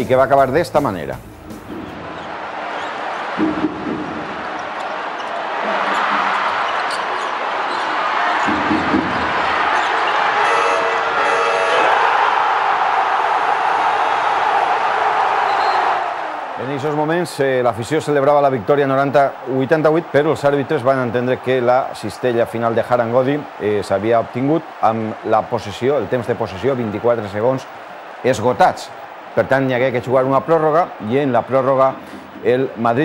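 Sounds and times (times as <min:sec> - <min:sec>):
crowd cheering: 0:01.5 - 0:33.0
buzzer horn tone: 0:10.3 - 0:12.0.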